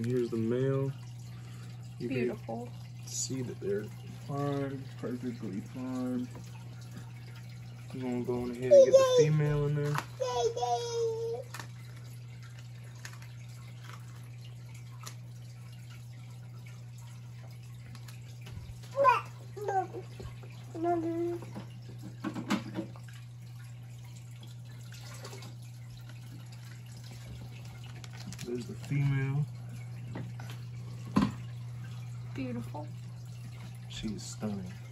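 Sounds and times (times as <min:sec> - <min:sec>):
aquarium filter humming: 0:00.0 - 0:34.9
water trickling: 0:00.0 - 0:34.9.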